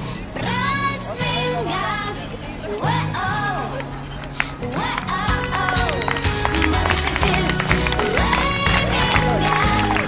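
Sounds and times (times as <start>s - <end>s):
background music with bass beat: 5.3s - 10.0s.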